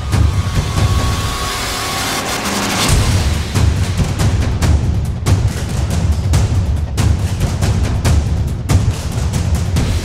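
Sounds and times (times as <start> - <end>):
cinematic background music: 0.0 - 10.0.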